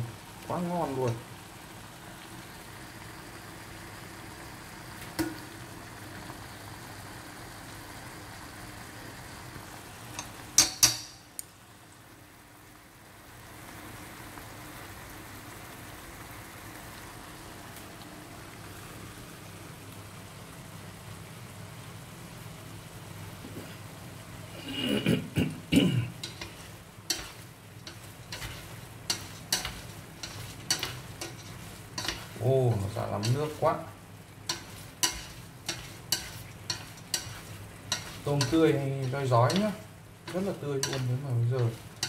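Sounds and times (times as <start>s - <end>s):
shrimp sizzling in a pan: 0.0s - 42.0s.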